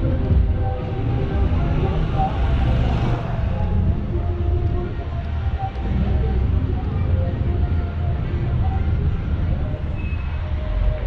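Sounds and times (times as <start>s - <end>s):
low rumble of traffic: 0.0s - 11.0s
people's voices: 0.0s - 11.0s.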